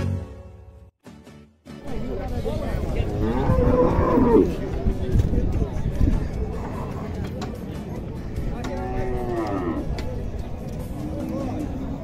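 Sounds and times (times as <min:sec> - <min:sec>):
cow mooing: 0:08.7 - 0:09.9.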